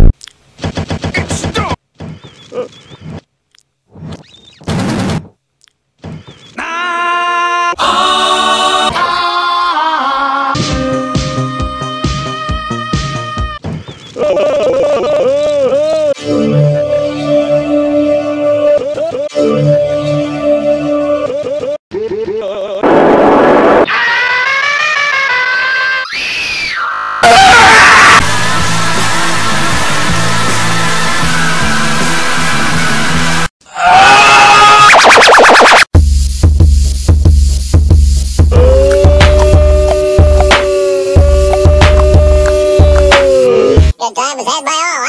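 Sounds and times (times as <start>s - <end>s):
music collage: 22.8s - 26.0s, 28.2s - 33.5s, 35.0s - 43.9s
bass-heavy music: 28.2s - 33.5s, 35.9s - 44.0s
pitch-shifted voice samples: 34.8s - 35.9s.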